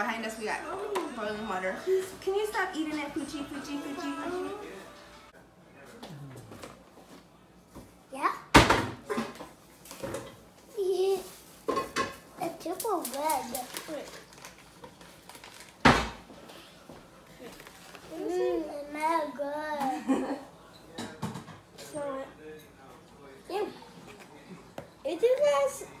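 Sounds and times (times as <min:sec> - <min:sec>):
paper packet rustling: 0:12.6 - 0:15.8, 0:17.4 - 0:18.2.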